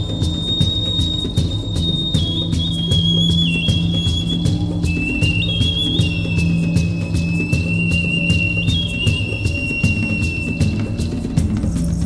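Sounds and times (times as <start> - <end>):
whistle-like melody: 0.0 - 11.8
ticking beat: 0.0 - 12.0.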